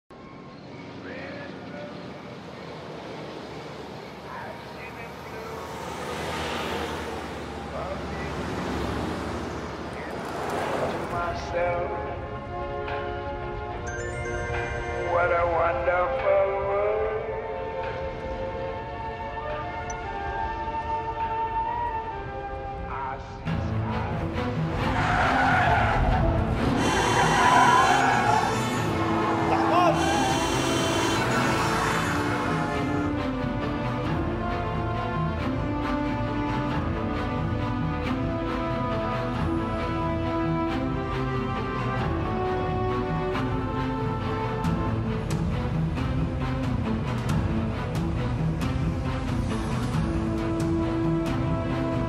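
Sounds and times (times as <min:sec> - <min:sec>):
cars driving along road: 0:00.1 - 0:13.9, 0:15.0 - 0:52.0
background music: 0:00.1 - 0:52.0
car tyres squealing: 0:04.0 - 0:11.3, 0:24.7 - 0:33.3.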